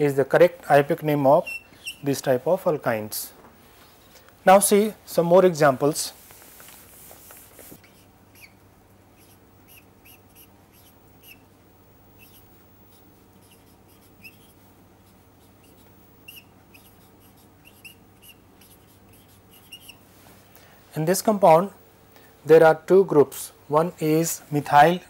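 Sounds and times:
low steady hum: 0.0s - 25.0s
marker squeaking on a whiteboard: 1.3s - 2.2s, 7.3s - 8.6s, 9.2s - 11.5s, 12.1s - 20.0s.

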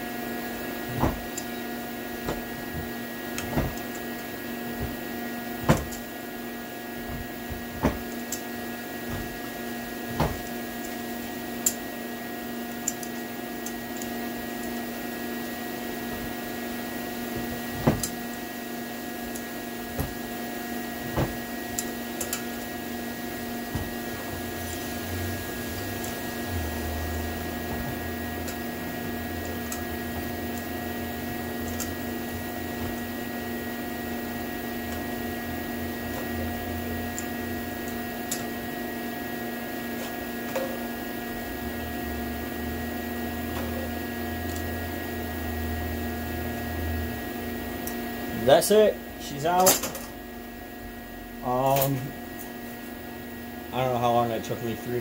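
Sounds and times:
steady machine hum: 0.0s - 55.0s
pliers clicking and knocking on metal: 11.6s - 11.8s, 12.8s - 14.1s, 31.6s - 32.0s.

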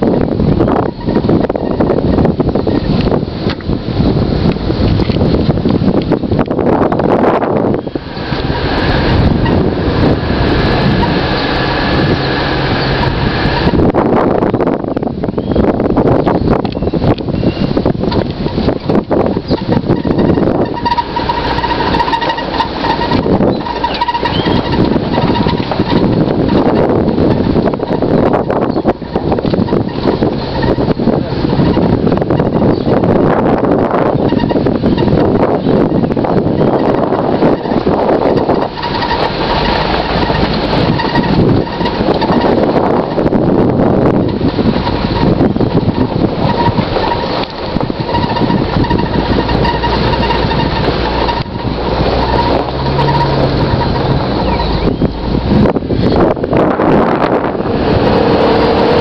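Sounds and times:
strong wind buffeting microphone: 0.0s - 59.0s.

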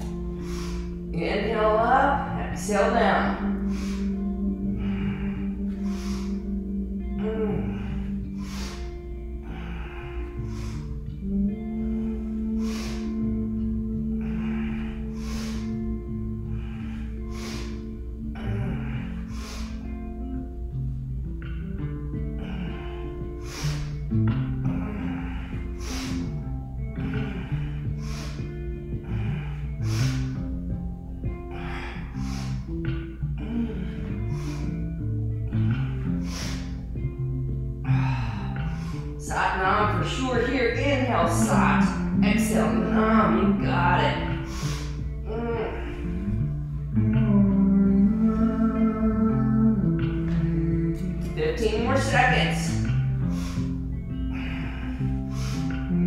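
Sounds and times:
woman breathing forcefully: 0.0s - 47.2s, 49.8s - 56.0s
slow background music: 0.0s - 56.0s.

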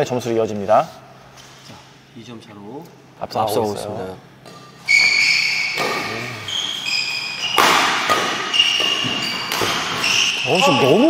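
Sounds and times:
racket hitting shuttlecock: 4.5s - 6.2s, 7.1s - 10.4s
shoes squeaking on court: 4.6s - 11.0s.

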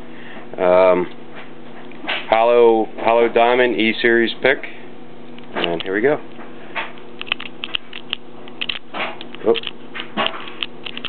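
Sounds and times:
lock pick clicking in padlock: 7.2s - 8.8s.

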